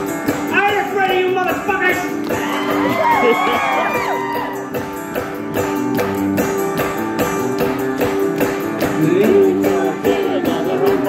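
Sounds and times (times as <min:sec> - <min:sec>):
guitar chords: 0:00.0 - 0:11.0
hand-clap beat: 0:01.5 - 0:11.0
person singing: 0:08.8 - 0:11.0.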